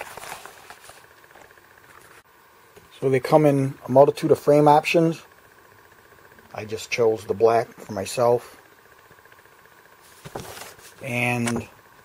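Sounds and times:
fabric case rustling: 10.1 - 11.0.

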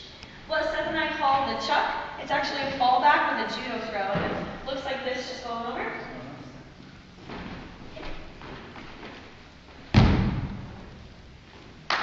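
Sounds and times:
loud thud of dancer landing: 9.9 - 10.9.

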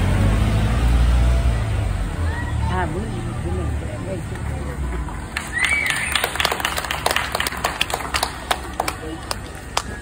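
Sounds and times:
low crowd rumble: 0.0 - 10.0
audience clapping: 4.3 - 10.0.

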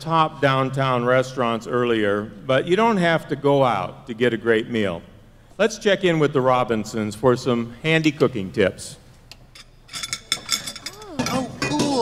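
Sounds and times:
dishes and cutlery clinking: 9.5 - 12.0.

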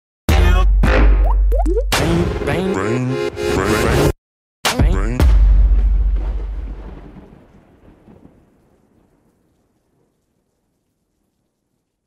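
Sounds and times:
rumbling thunder: 5.7 - 10.2
rain: 6.1 - 12.0.

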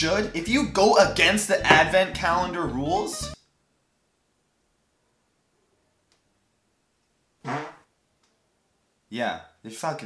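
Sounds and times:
short fart-like noise: 7.4 - 7.9.

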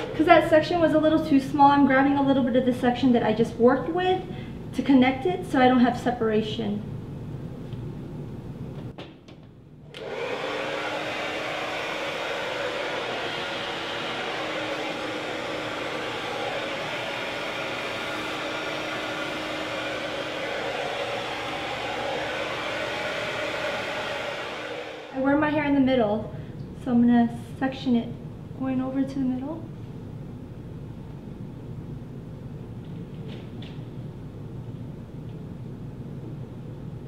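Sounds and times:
hair dryer blowing air: 0.0 - 1.8, 9.9 - 25.6.

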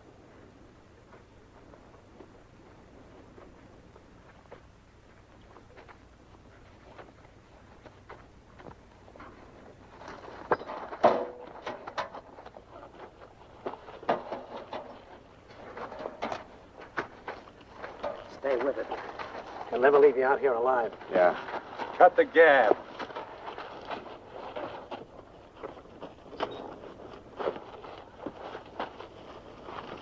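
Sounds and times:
knocks and clatter of gear: 6.6 - 20.1, 20.7 - 30.0.

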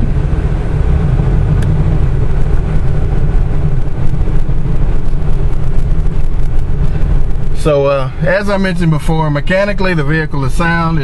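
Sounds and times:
heavy engine rumble: 0.0 - 11.0.

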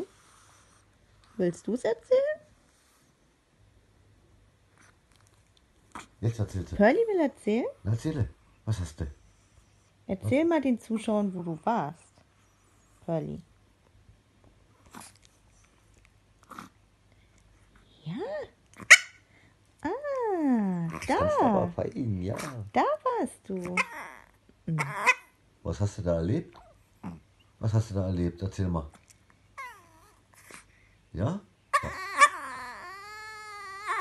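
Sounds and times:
small dog yipping: 18.8 - 19.2, 23.6 - 25.4, 29.6 - 30.6, 31.7 - 34.0.

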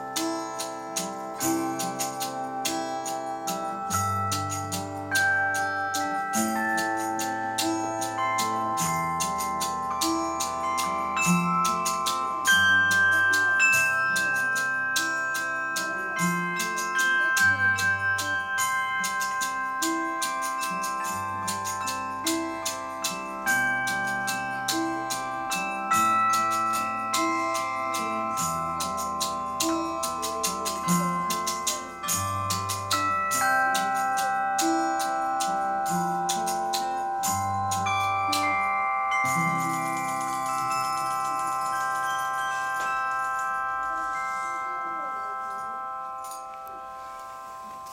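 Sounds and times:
metal cymbals and bells ringing: 0.0 - 47.9.

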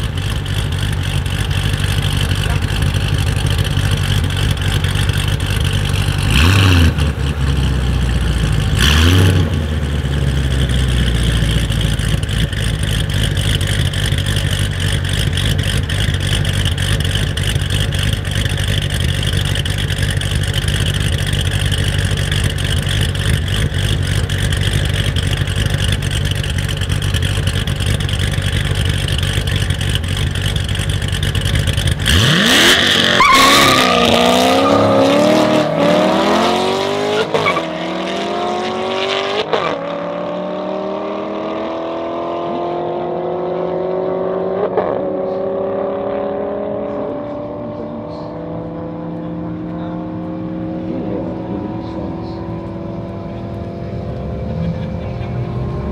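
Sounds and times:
car engine idling: 0.0 - 36.8, 47.7 - 55.9.

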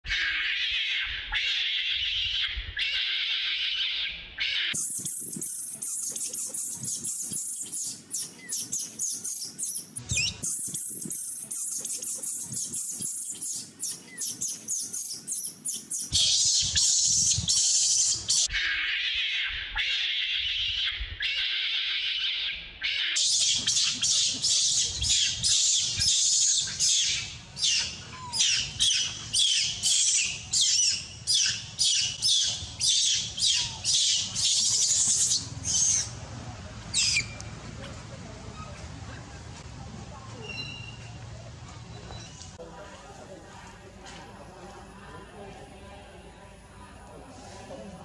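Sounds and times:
young monkey crying: 0.1 - 36.1.

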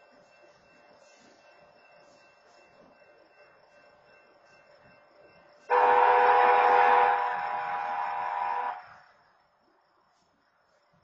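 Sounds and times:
locomotive air horn blast: 5.7 - 9.0.

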